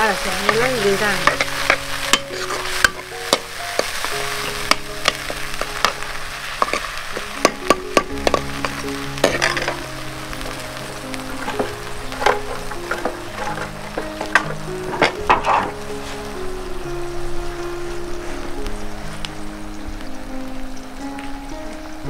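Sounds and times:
food sizzling: 0.0 - 22.0
soft background music: 0.0 - 22.0
ladle scraping against pan: 1.2 - 3.9.

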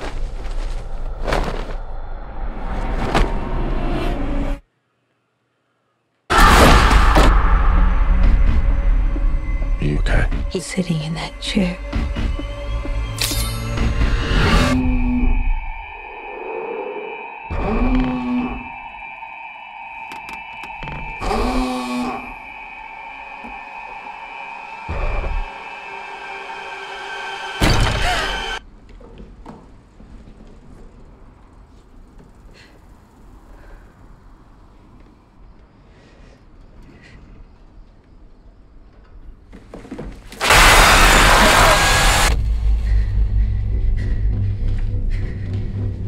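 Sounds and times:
high-pitched drone: 10.9 - 28.6
gliding tone: 13.1 - 28.6
loud rush of noise: 14.7 - 27.7, 40.4 - 42.4.

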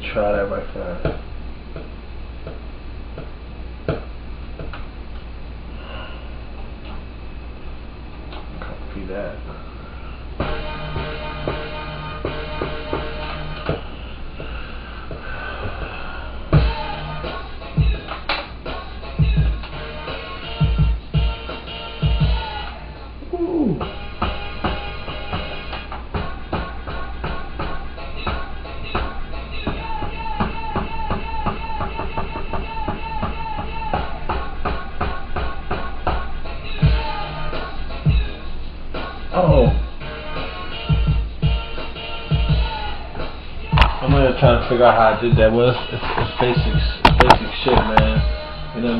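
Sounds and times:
hip-hop beat: 10.4 - 13.9, 15.2 - 48.9
heavy kick drums: 13.7 - 17.0, 17.8 - 18.1, 18.7 - 19.8, 20.6 - 22.5, 23.7 - 37.1, 38.1 - 38.4, 39.0 - 40.0, 40.9 - 41.7, 42.3 - 42.8, 43.7 - 48.4
drum pattern: 16.5 - 19.8, 20.6 - 22.5, 39.4 - 39.9, 43.7 - 48.9.

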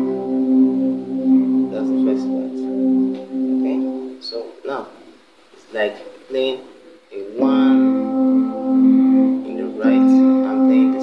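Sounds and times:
electronic keyboard chords: 0.0 - 4.4, 7.3 - 11.0.

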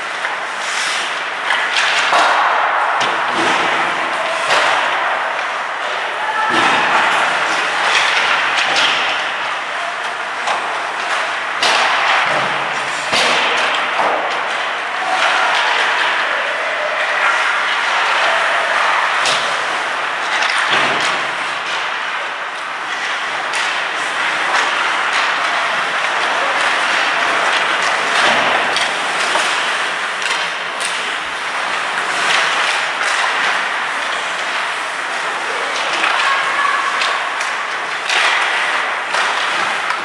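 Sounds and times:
skate blades scraping ice: 0.0 - 6.1, 10.4 - 16.4, 17.0 - 40.0
hockey sticks and puck clacking: 0.0 - 40.0.

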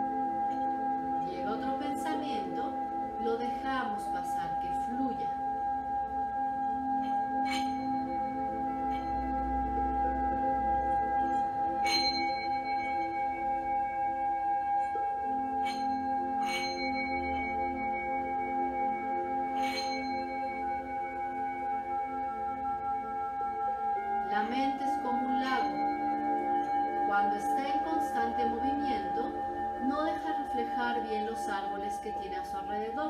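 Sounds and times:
metal singing bowl ringing: 0.0 - 33.0.

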